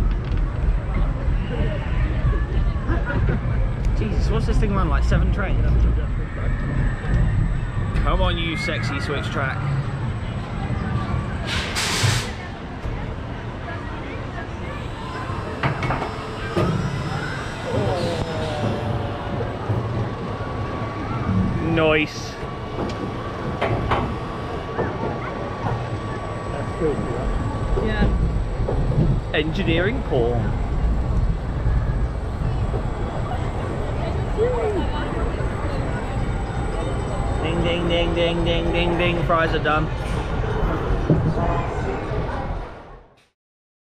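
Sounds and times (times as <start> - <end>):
roller coaster rumbling on track: 0.0 - 43.2.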